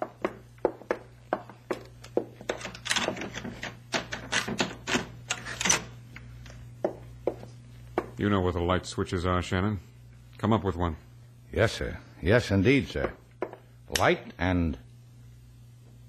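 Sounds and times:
footsteps on hard floor: 0.0s - 3.2s, 6.5s - 8.2s.

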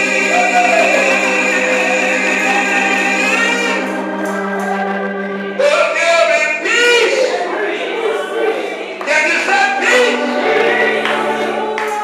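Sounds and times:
voices singing gospel: 0.0s - 12.0s.

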